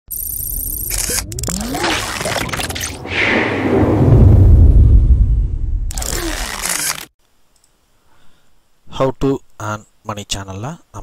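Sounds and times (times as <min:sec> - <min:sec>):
sharp clicks: 0:00.1 - 0:01.8, 0:05.9 - 0:07.8
gliding electronic tones: 0:00.1 - 0:04.0
low rumble: 0:02.6 - 0:06.0.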